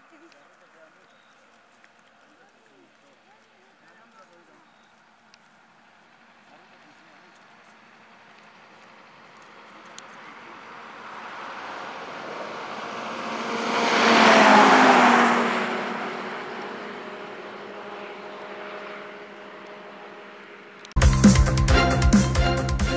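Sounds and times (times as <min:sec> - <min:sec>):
vehicle passing at speed: 0:07.5 - 0:20.9.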